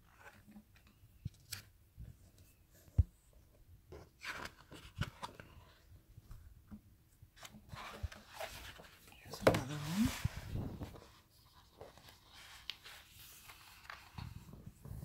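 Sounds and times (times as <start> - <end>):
paper rustling: 7.4 - 14.8.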